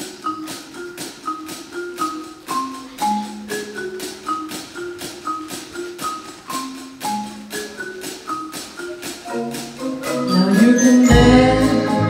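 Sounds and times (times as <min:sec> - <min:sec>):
marimbas and mallet percussion: 0:00.0 - 0:12.0.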